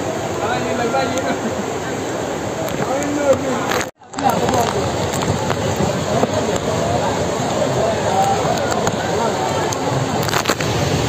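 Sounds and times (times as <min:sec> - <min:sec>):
heavy rain: 0:00.0 - 0:11.0
flash flood rushing: 0:01.3 - 0:11.0.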